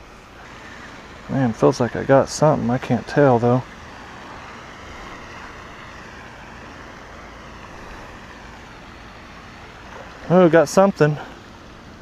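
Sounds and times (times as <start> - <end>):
rushing outdoor background noise: 0.0 - 12.0.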